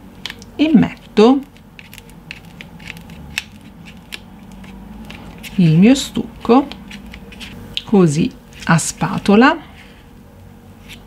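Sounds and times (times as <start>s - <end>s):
palette knife scraping paste: 1.8s - 5.8s.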